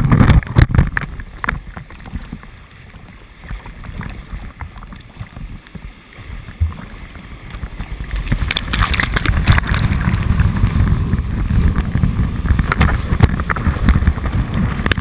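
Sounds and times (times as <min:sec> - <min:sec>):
river water splashing and rushing: 0:00.0 - 0:15.0.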